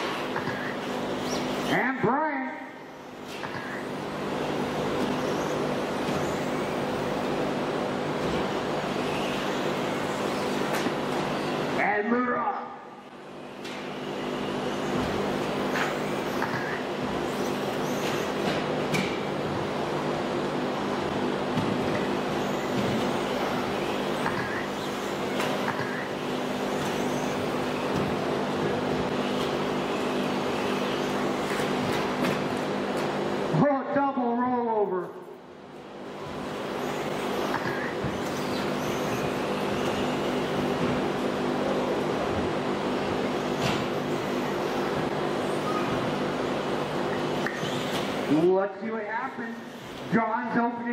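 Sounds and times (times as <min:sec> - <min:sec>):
electric rc car motors whining: 0:15.7 - 0:18.4, 0:22.4 - 0:27.9, 0:29.2 - 0:31.6, 0:36.4 - 0:40.5.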